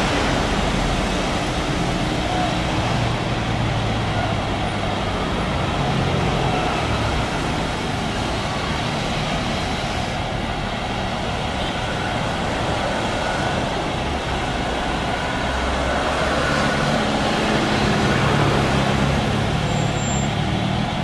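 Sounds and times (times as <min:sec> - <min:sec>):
jet engines roaring: 0:00.0 - 0:21.0.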